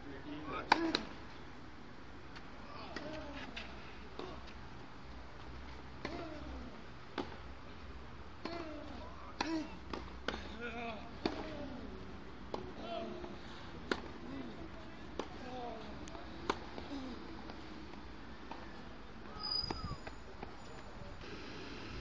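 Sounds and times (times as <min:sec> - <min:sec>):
tennis balls struck with rackets: 0:00.6 - 0:01.2, 0:06.0 - 0:07.5, 0:08.4 - 0:14.3, 0:15.0 - 0:17.6.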